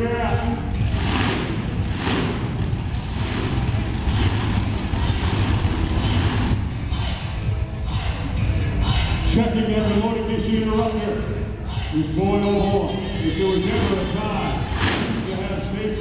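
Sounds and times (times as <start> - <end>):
monster truck engines rumbling: 0.0 - 16.0.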